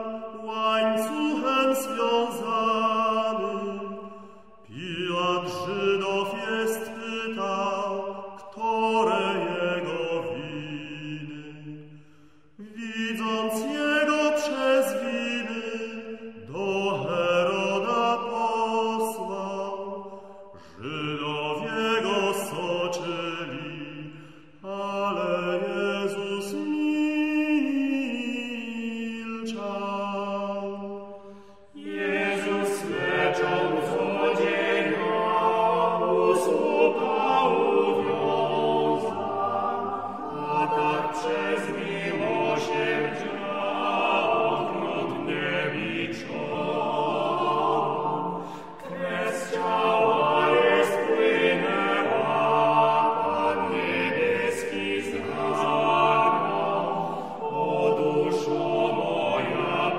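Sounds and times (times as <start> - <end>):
vocal ensemble singing a hymn: 0.0 - 59.9.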